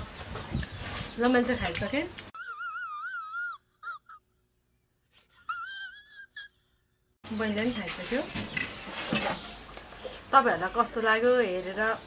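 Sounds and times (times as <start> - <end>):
man's whimpering wail: 2.4 - 4.3.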